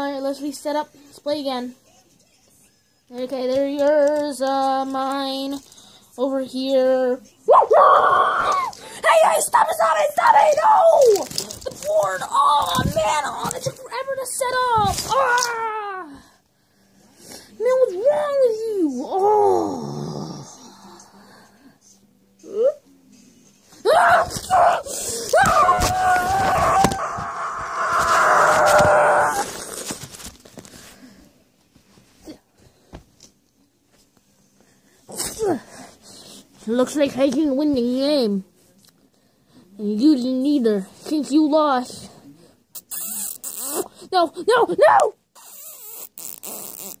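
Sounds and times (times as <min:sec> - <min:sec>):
young person screaming: 0:23.9 - 0:29.6.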